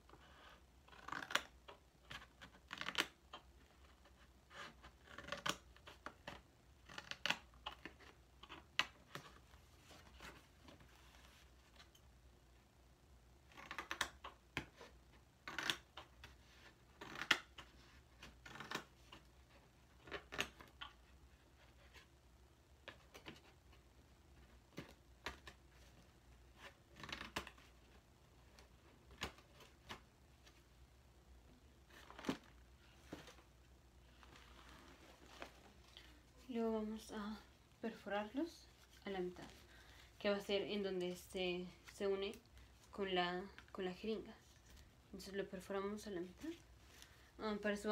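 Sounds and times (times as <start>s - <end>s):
scissors cutting cardboard: 0.4s - 10.4s, 13.5s - 19.3s.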